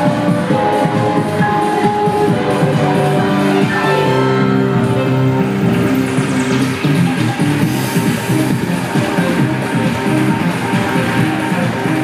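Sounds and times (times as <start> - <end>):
upbeat music over sound system: 0.0 - 12.0.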